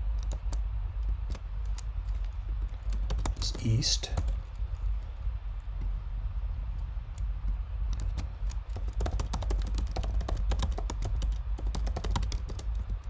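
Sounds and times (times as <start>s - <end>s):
steady low hum: 0.0s - 13.0s
computer keyboard typing: 0.2s - 0.6s, 2.8s - 4.6s, 7.9s - 12.9s.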